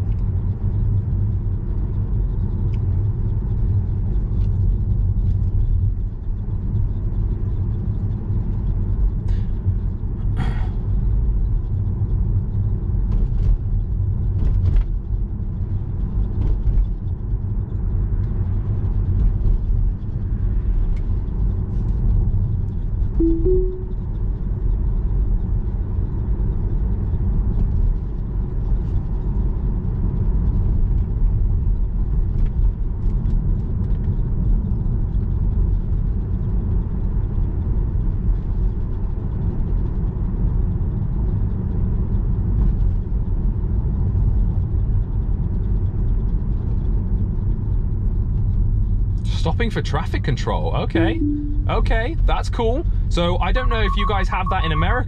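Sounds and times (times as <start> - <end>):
road and tyre rumble: 0.0 - 23.2, 24.5 - 51.0
two-note car chime: 23.2 - 24.0, 50.9 - 52.2.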